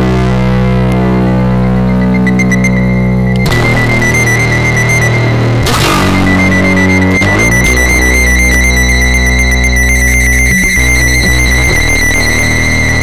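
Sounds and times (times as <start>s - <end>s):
droning instrumental chords: 0.0s - 13.0s.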